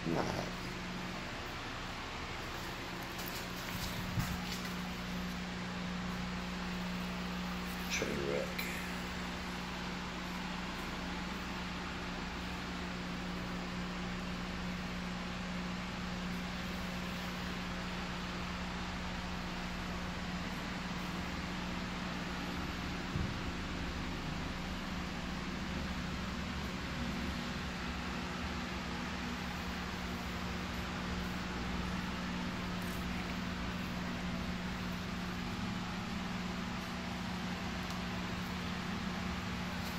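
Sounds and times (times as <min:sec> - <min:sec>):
constant low hum: 0:00.0 - 0:39.9
fans running with airy rush: 0:00.0 - 0:39.9.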